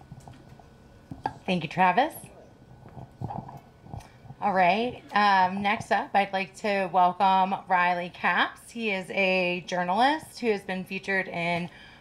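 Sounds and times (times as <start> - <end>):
woman's voice: 1.4 - 2.3, 4.4 - 11.8.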